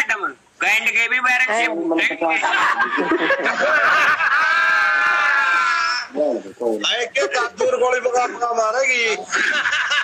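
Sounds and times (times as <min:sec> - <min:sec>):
men talking: 0:00.0 - 0:09.8
men laughing loudly: 0:02.4 - 0:06.1, 0:09.2 - 0:10.0.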